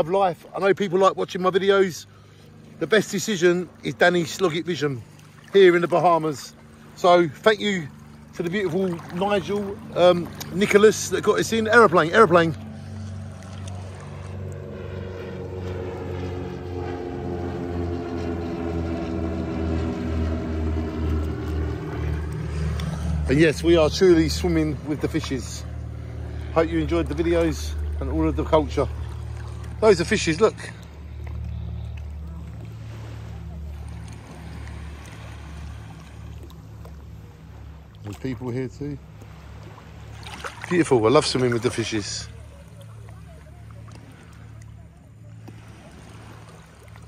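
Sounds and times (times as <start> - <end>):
propeller plane flying overhead: 0.0 - 47.0
low rumble: 7.8 - 47.0.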